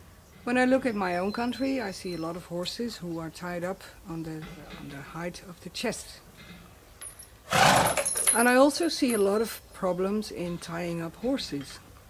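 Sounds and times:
horse snorting: 7.5 - 8.1.

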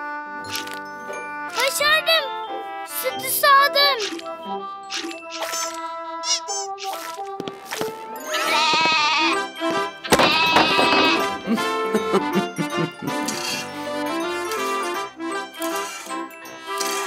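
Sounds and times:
light background music: 0.0 - 17.0
cartoon goat bleating: 5.4 - 6.8, 8.3 - 9.4, 10.1 - 11.3.

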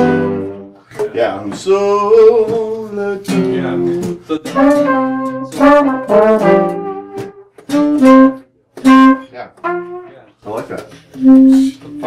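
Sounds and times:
horn section playing chords: 0.0 - 0.8, 4.4 - 10.3, 11.1 - 12.0
acoustic guitar: 0.0 - 12.0.

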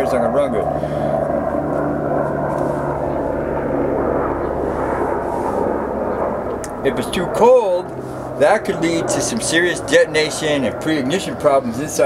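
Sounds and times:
distant engine drone: 0.0 - 12.0.

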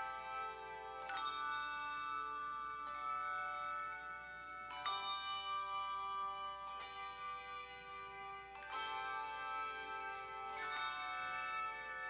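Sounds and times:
handbell choir ringing chords: 0.0 - 12.0.

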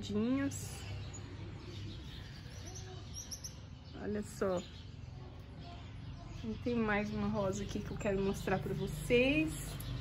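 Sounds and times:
high bird chirps: 0.1 - 10.0.

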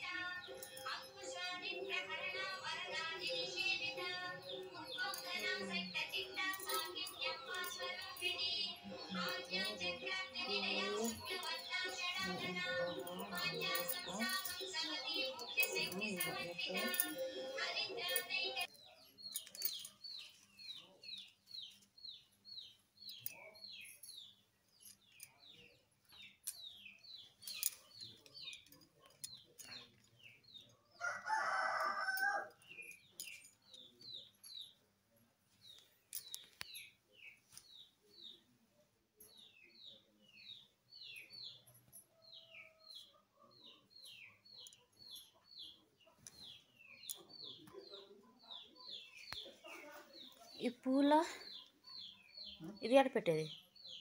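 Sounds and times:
birds chirping: 0.0 - 54.0.

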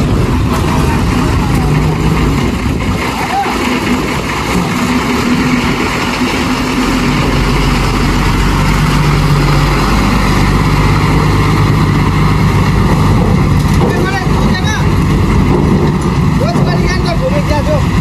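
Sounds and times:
diesel truck driving past: 0.0 - 18.0.

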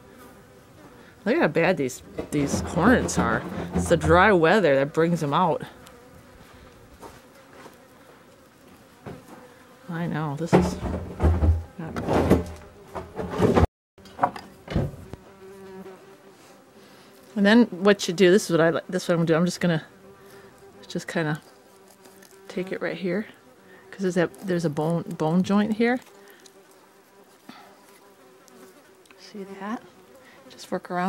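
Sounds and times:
hornets buzzing: 0.0 - 13.6, 14.2 - 31.0.

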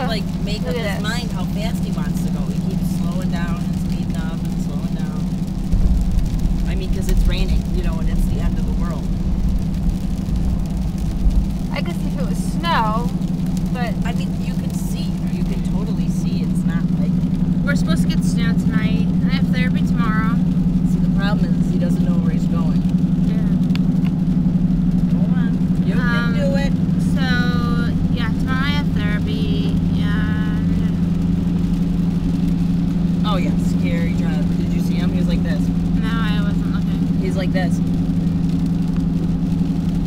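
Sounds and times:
voices talking: 0.0 - 5.4, 6.6 - 9.2, 11.6 - 31.6, 32.9 - 38.1
car engine and tyres on wet road: 0.0 - 40.0.

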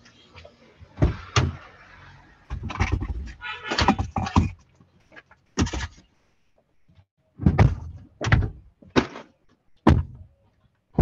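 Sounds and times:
heavy thumps and knocks: 7.4 - 10.3.

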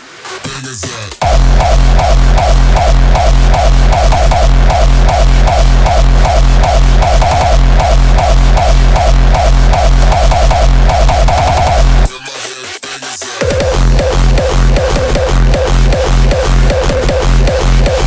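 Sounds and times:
hardstyle track: 0.0 - 18.0
vocal sample: 0.4 - 18.0
heavy distorted kick and bass: 1.2 - 12.1, 13.4 - 18.0.

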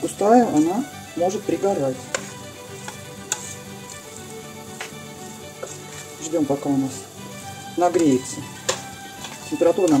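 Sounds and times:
quiet background music: 0.0 - 10.0
fork stirring cheese in steel pot: 0.1 - 6.4, 7.8 - 10.0.

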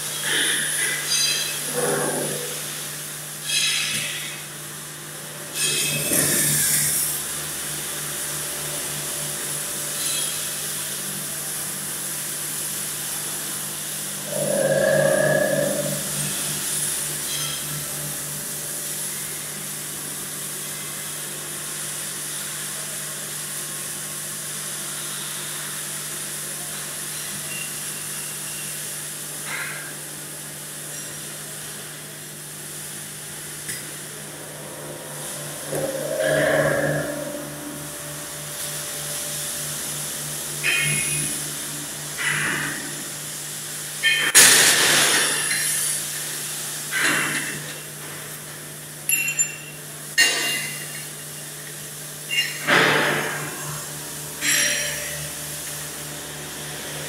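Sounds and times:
industrial machine hum and hiss: 0.0 - 57.0
machine whirring: 33.7 - 45.9.

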